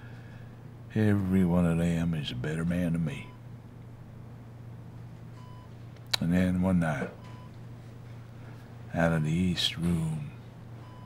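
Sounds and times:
low steady hum: 0.0s - 11.0s
soft electronic beep: 7.0s - 7.6s.

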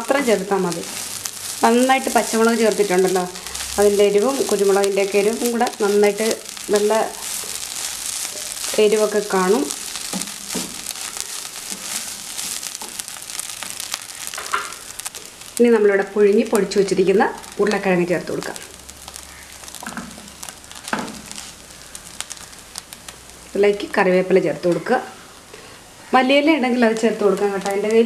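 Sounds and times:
person speaking: 0.0s - 7.3s, 8.7s - 9.8s
wooden spatula scraping and stirring: 0.0s - 15.6s
food sizzling in a pan: 0.0s - 28.0s.

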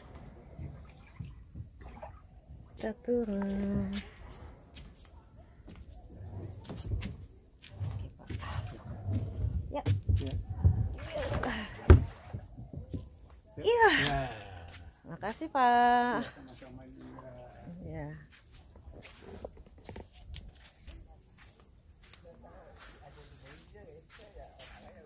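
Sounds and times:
scuffing and bumping on boat: 2.8s - 13.3s
footsteps on sand: 18.2s - 25.0s.

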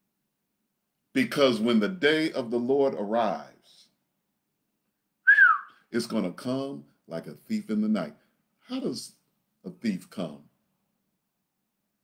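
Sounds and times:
whistled note gliding down: 5.3s - 5.8s.

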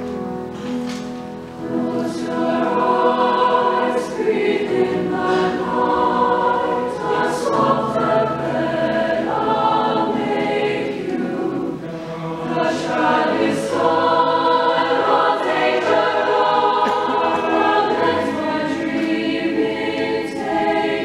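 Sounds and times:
choir singing a lullaby: 1.6s - 21.0s.

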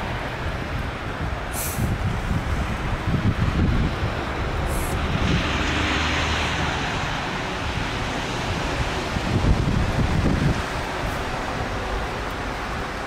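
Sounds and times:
steady rushing noise: 0.0s - 13.0s
brief high hisses: 1.5s - 1.9s.

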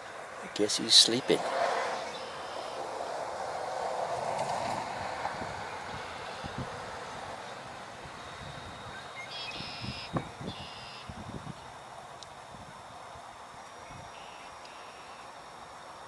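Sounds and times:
distant road traffic hum: 0.0s - 16.0s
high-pitched bird calls: 8.2s - 11.1s.

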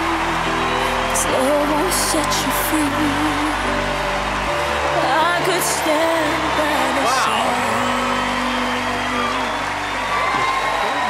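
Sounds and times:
audience clapping: 0.0s - 11.0s.

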